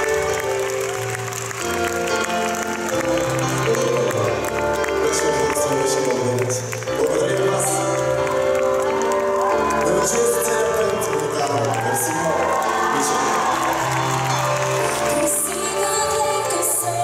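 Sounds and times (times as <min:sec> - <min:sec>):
keyboards: 0:00.0 - 0:17.0
audience cheering and calling out: 0:07.0 - 0:16.7.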